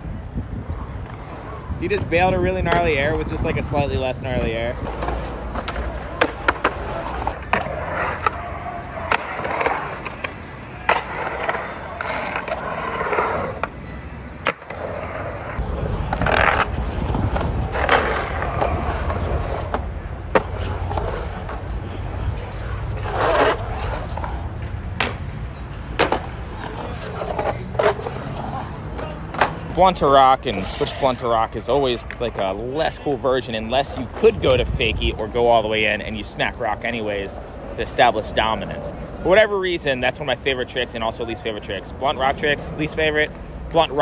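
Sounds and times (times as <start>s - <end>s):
skateboard wheels rolling on concrete: 0.0s - 44.0s
skateboard clacking on concrete: 1.0s - 13.8s, 14.4s - 25.3s, 25.9s - 32.6s.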